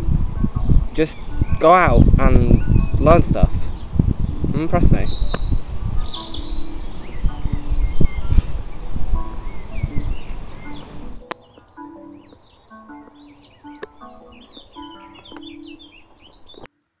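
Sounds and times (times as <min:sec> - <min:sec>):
birds chirping: 0:00.0 - 0:16.7
simple melody notes: 0:00.0 - 0:16.7.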